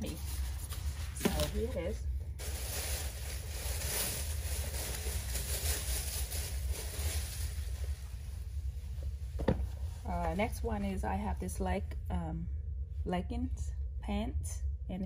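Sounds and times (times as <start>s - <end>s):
clothing rustling: 0.0s - 10.5s
constant low rumble: 0.0s - 15.0s.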